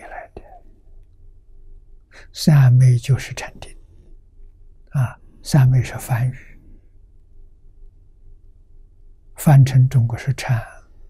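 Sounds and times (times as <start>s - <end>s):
faint low room hum: 0.0s - 11.0s
man speaking: 2.2s - 3.8s, 4.9s - 6.6s, 9.4s - 10.8s.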